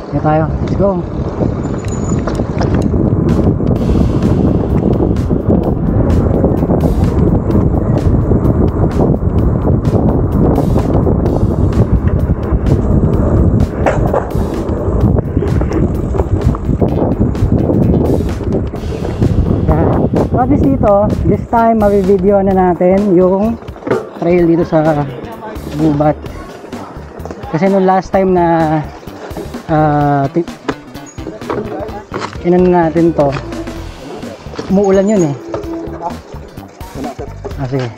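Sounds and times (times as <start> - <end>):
bike knocking and rattling: 0.0 - 19.2, 20.2 - 37.9
wind buffeting microphone: 0.0 - 37.9.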